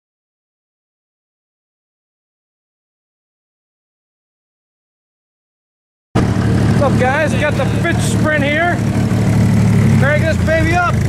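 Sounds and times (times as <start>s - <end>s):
car engine idling: 6.2s - 11.0s.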